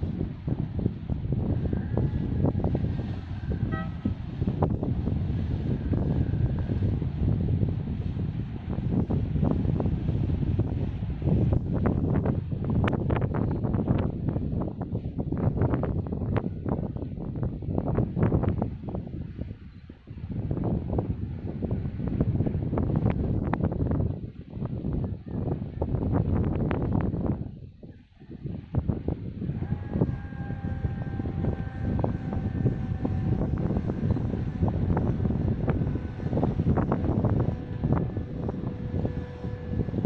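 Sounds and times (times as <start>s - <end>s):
gusty wind buffeting microphone: 0.0s - 40.0s.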